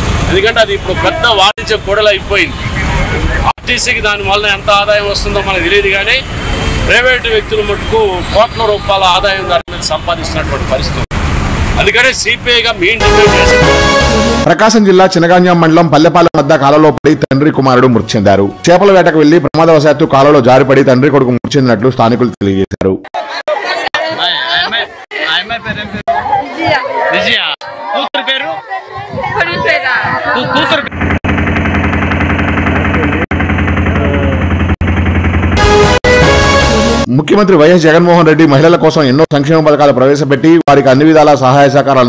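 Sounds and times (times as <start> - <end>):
road traffic hum: 0.0 - 14.5, 30.0 - 37.1
people talking over one another: 0.4 - 6.1, 21.7 - 31.0.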